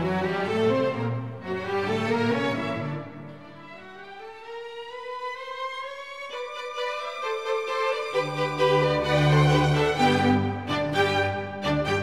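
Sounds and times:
slow violin music: 0:00.0 - 0:12.0.

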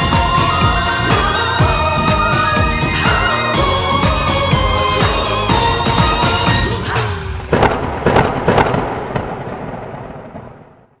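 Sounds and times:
song: 0:00.0 - 0:08.8
firecracker bangs: 0:07.5 - 0:11.0.

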